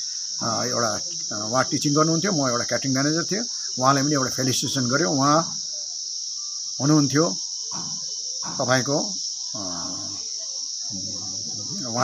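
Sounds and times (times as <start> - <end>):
insects droning: 0.0 - 12.0
man's voice: 10.9 - 12.0.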